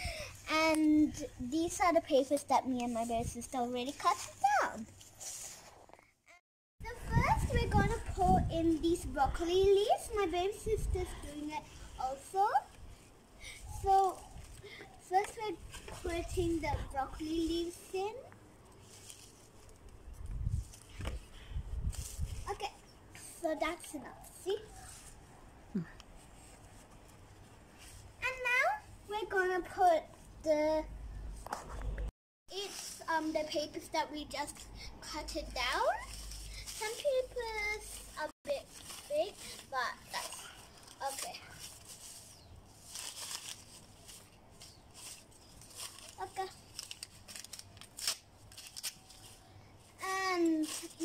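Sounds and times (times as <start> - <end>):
leaves rustling in plastic pots: 17.2 - 25.2, 35.3 - 51.0.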